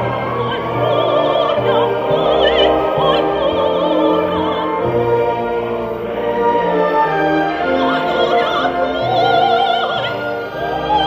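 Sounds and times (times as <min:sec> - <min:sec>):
operatic soprano singing: 0:00.0 - 0:11.0
orchestra playing: 0:00.0 - 0:11.0.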